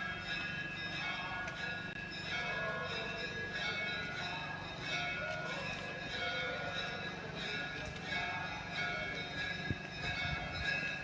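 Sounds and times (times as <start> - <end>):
bells ringing: 0.0 - 11.0.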